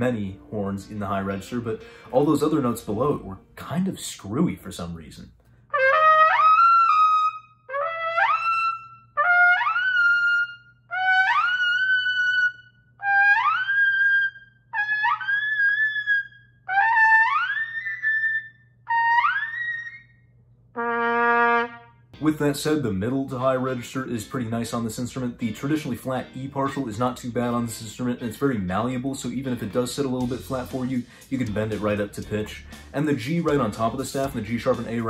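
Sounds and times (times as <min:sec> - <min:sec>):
trumpet playing high notes: 0:05.7 - 0:20.0, 0:20.8 - 0:22.4.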